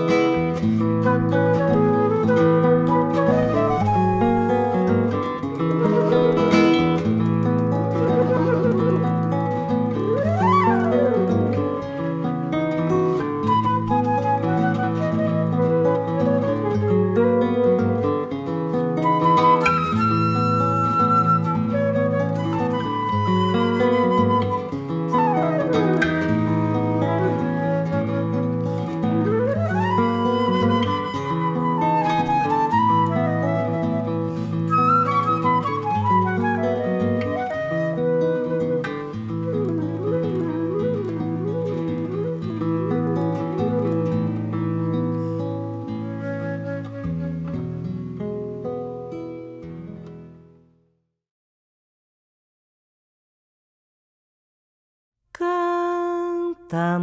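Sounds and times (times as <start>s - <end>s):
acoustic guitar accompaniment: 0.0s - 50.9s
flute playing lively melody: 1.0s - 7.0s, 7.6s - 12.2s, 13.0s - 18.3s, 19.0s - 44.5s, 46.1s - 47.5s.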